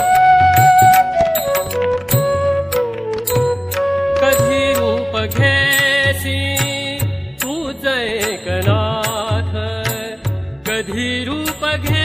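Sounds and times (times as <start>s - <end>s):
bamboo flute melody: 0.0s - 6.2s
tabla strokes: 0.0s - 12.0s.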